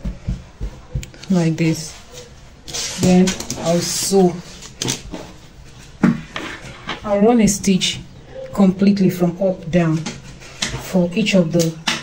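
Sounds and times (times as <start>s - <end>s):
scratchy handling noises: 0.4s - 7.3s.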